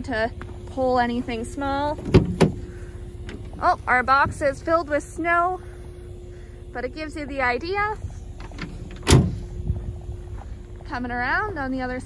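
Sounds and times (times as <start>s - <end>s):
low rumbling handling noise: 0.0s - 12.0s.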